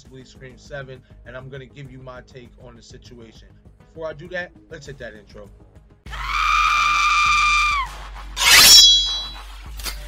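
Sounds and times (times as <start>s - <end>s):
high ringing: 8.4s - 9.4s
high scream-like tone: 8.4s - 9.4s.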